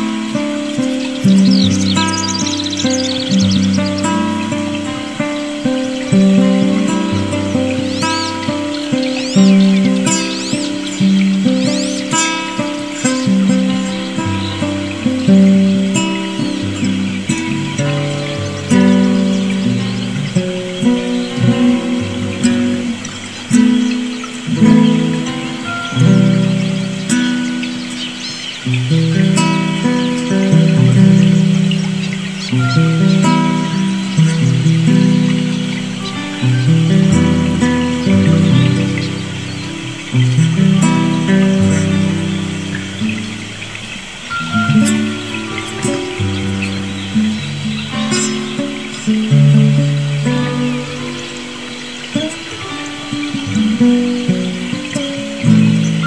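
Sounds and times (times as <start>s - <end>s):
birds chirping: 0.0s - 56.0s
classical guitar playing: 0.0s - 56.0s.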